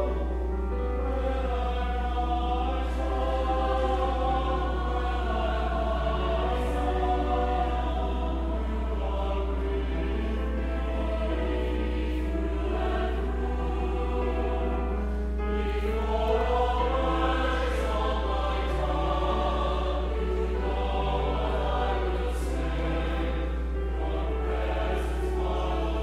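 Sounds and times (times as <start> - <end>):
choir singing in harmony: 0.0 - 26.0.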